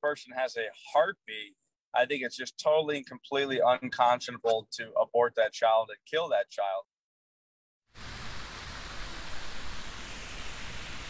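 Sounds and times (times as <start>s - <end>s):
steady background hiss: 8.0s - 11.0s.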